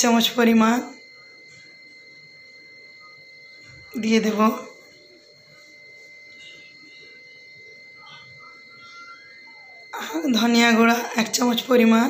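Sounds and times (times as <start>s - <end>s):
faint high-pitched whine: 0.0s - 12.0s.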